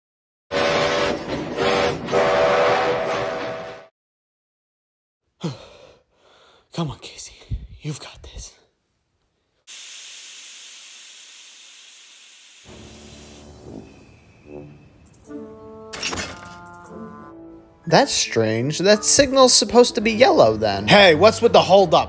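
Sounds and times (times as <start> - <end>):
person sighing and breathing: 5.4 - 6.7
steam locomotive hissing steam: 9.7 - 15.3
soft music: 13.1 - 22.0.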